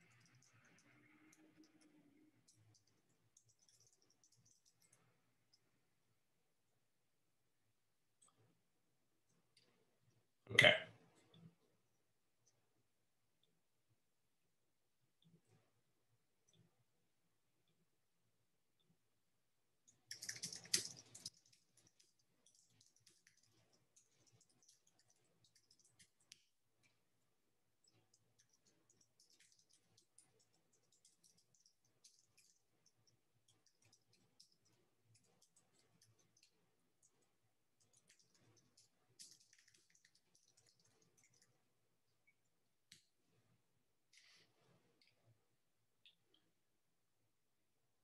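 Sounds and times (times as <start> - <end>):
typing on computer keyboard: 0.0 - 5.0, 19.9 - 26.4, 27.9 - 36.5, 37.8 - 41.5.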